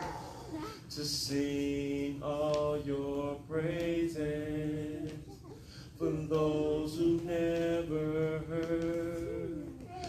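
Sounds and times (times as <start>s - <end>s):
singer breathing: 0.0s - 0.9s, 5.6s - 6.0s
man singing gospel song: 0.0s - 10.0s.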